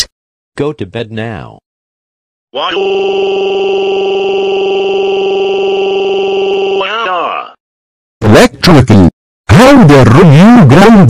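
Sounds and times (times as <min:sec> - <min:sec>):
synthetic voice drawing out vowel: 0:02.6 - 0:07.6.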